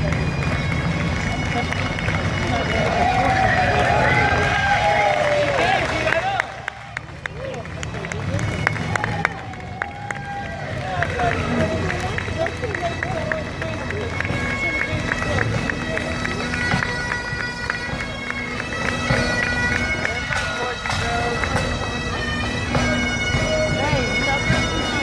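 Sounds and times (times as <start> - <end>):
bagpipes playing marching tune: 0.0 - 25.0
crowd chatter: 0.0 - 25.0.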